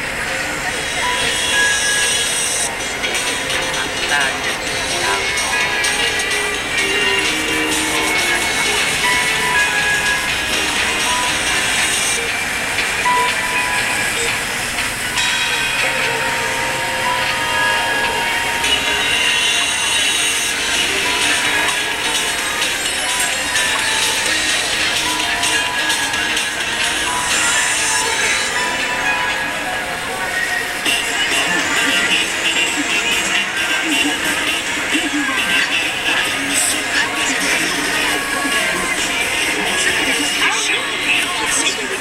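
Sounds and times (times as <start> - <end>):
amplified voices: 0.0 - 42.0
crowd murmur: 0.0 - 42.0
passing traffic: 0.0 - 42.0
music from speakers: 1.0 - 42.0.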